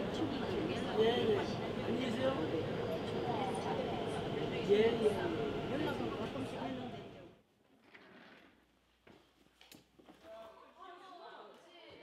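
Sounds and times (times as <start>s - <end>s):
people chattering: 0.0s - 7.4s.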